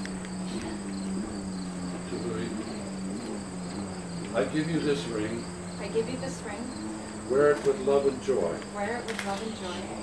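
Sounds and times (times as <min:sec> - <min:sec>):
high-pitched whine: 0:00.0 - 0:10.0
steady low hum: 0:00.0 - 0:10.0.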